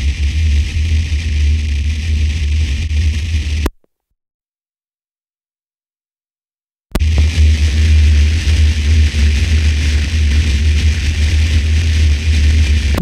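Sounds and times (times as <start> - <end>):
loud electrical hum: 0.0 - 3.7, 7.0 - 13.0.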